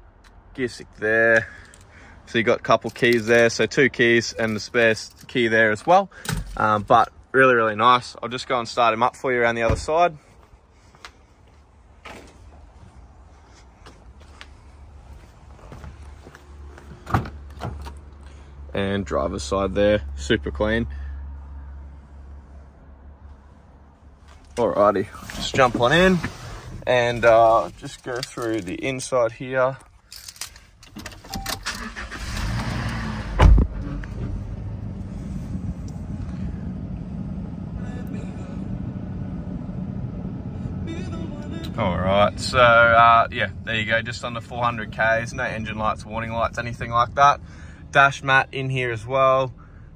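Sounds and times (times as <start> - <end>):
car engine cranking: 30.0 - 35.2.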